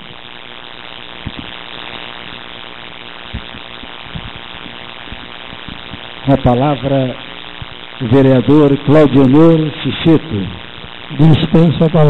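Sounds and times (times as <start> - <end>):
electrical hum and hiss: 0.0 - 12.0.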